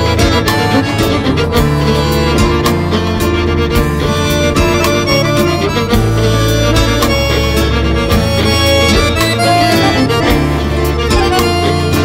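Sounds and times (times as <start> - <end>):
electric bass: 0.0 - 12.0
fiddle melody: 0.0 - 12.0
hand percussion beat: 0.0 - 12.0.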